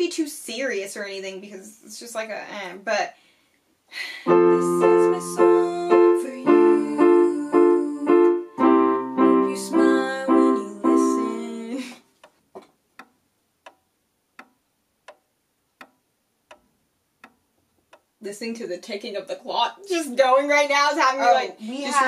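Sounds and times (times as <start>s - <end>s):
electronic keyboard piano chords: 4.3s - 11.6s
clock ticking: 9.8s - 18.6s.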